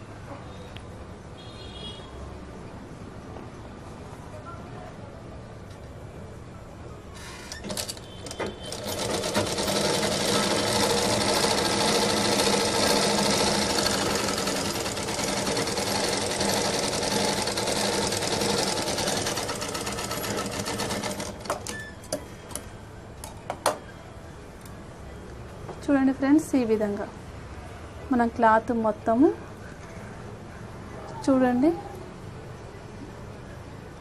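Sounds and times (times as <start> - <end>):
sewing machine stitching: 7.2 - 21.8.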